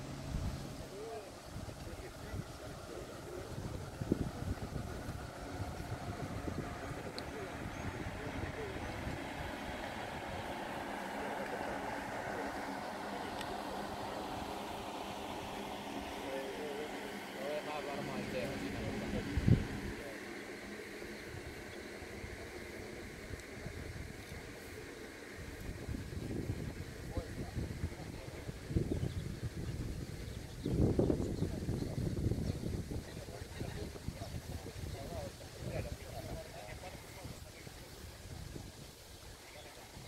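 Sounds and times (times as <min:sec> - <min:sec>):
background conversation: 0:00.0 - 0:40.0
wind rumbling on microphone: 0:00.0 - 0:40.0.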